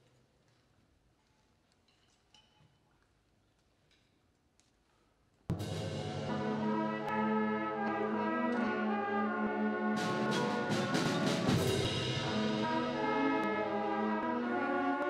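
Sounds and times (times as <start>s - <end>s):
sharp percussion strikes: 5.5s - 8.9s, 10.0s - 14.1s
concert band playing: 5.5s - 15.0s
timpani: 5.5s - 15.0s.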